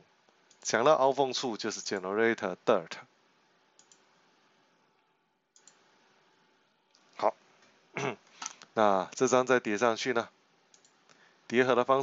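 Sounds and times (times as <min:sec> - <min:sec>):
computer mouse double-click: 0:03.8 - 0:04.0, 0:05.6 - 0:05.8, 0:10.7 - 0:11.0.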